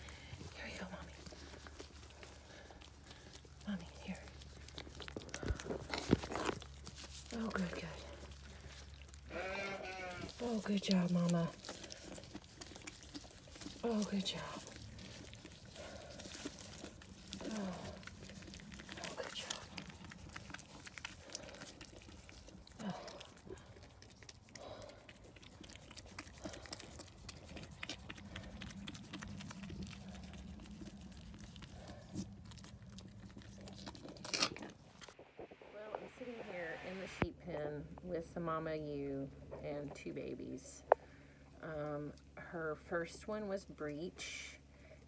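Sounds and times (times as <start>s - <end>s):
ewe licking lamb: 0.0s - 35.2s
straw bedding rustling and crunching: 0.6s - 24.0s.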